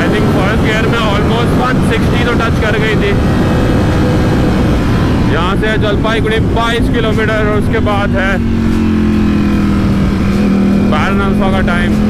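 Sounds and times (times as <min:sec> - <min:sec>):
motorcycle engine cruising: 0:00.0 - 0:12.0
wind rush on microphone: 0:00.0 - 0:12.0.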